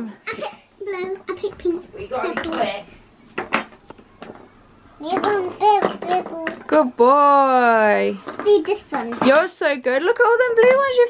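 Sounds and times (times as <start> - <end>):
plastic tongs knocking on bowls: 1.1 - 2.7, 3.3 - 4.5, 5.1 - 6.8
plastic counters clacking: 2.3 - 2.7, 5.1 - 6.7.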